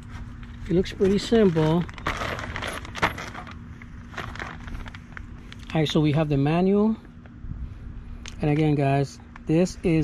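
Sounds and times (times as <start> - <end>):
plastic sleeve crinkling: 0.5 - 6.0.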